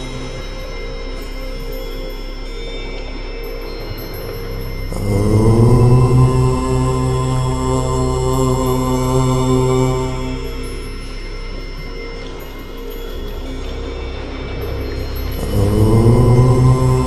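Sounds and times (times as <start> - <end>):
man chanting om: 0.0 - 1.8, 4.7 - 12.0, 13.0 - 17.0
continuous steady drone: 0.0 - 17.0.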